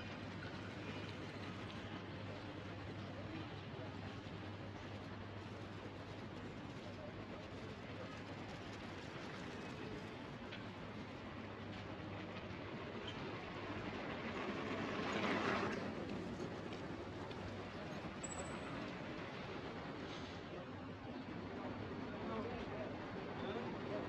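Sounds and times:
city background noise: 0.0 - 24.0.

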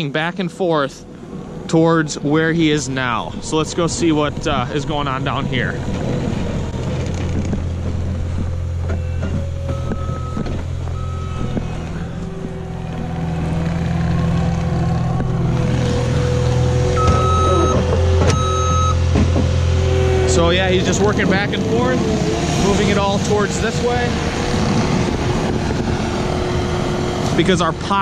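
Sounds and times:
diesel loader engine running: 0.0 - 28.0
reversing alarm beeps: 9.0 - 12.2, 16.9 - 19.0.

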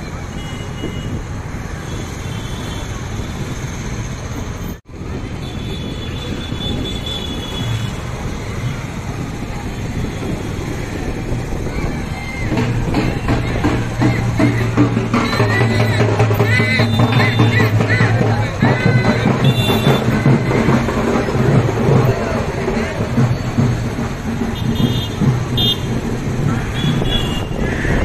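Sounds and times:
crowd chatter: 0.0 - 28.0
motorbike and traffic engines: 0.0 - 28.0
music with drums: 7.6 - 28.0.

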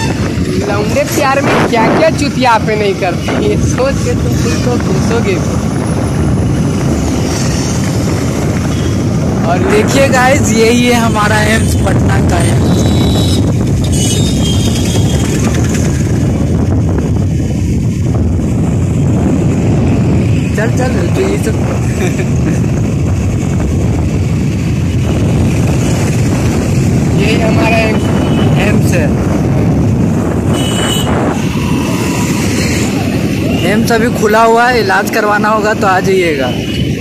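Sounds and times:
wind rushing over microphone: 0.0 - 37.0
motorcycle engine running: 12.6 - 20.0.

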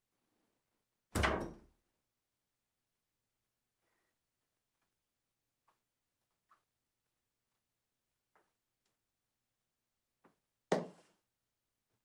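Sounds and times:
wooden door closing with a thud: 1.2 - 1.7.

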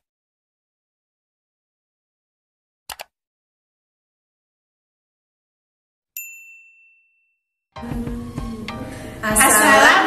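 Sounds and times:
bright ding: 6.2 - 7.4
music with a beat: 7.8 - 9.5.

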